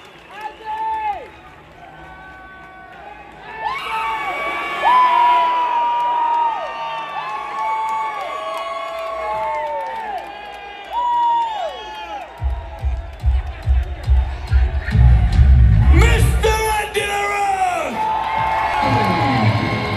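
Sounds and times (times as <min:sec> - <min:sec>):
crowd cheering and yelling: 0:00.0 - 0:19.9.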